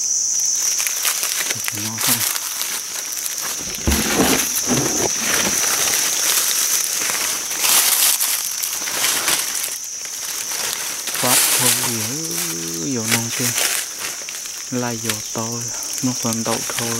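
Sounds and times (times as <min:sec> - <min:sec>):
high-pitched insect drone: 0:00.0 - 0:06.9, 0:09.5 - 0:16.9
dry leaves rustling and crackling: 0:00.5 - 0:16.9.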